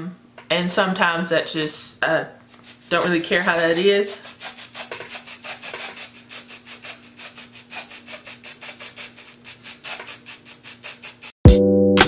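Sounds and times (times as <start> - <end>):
aerosol can shaking: 2.5 - 11.4.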